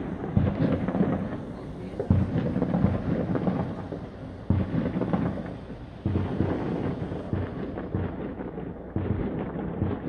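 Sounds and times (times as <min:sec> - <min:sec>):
distant fireworks bangs and crackle: 0:00.0 - 0:10.0
heavy fireworks booms: 0:00.0 - 0:10.0.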